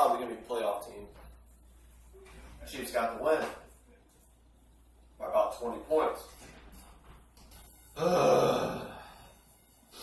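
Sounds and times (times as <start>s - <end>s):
man groaning: 8.0s - 9.2s.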